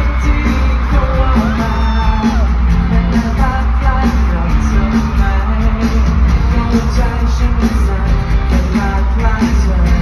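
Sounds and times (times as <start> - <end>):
loud pop song over sound system: 0.0 - 10.0
person singing: 0.0 - 10.0.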